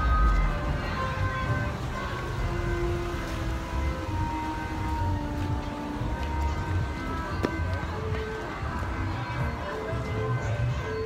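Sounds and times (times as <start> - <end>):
carousel music: 0.0 - 11.0.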